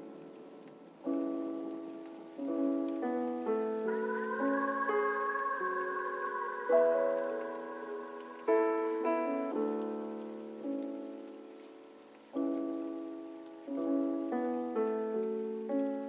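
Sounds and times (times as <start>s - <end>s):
soft piano chords: 0.0s - 16.0s.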